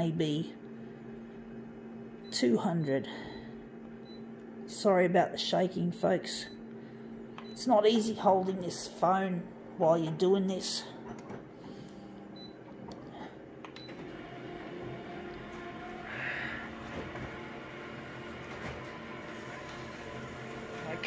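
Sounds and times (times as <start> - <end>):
copier machine hum: 0.0 - 21.0.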